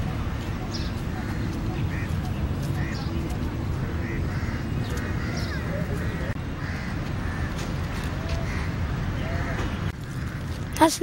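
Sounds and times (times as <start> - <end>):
steady low rumble: 0.0 - 7.9
crows cawing: 0.7 - 10.8.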